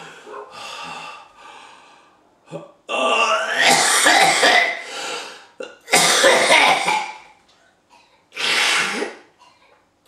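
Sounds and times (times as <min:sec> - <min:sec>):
man gasping breaths: 0:00.0 - 0:02.2.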